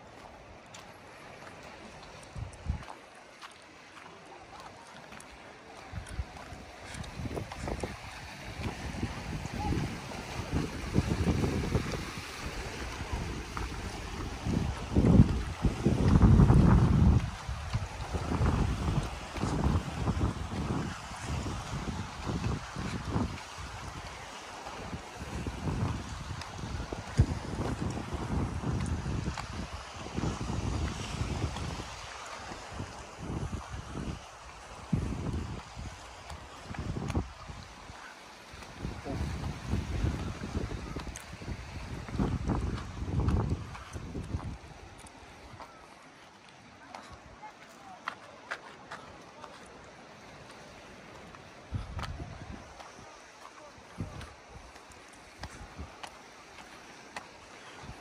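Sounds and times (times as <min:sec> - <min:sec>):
wind buffeting microphone: 0:01.7 - 0:03.1, 0:05.3 - 0:45.9, 0:46.8 - 0:58.0.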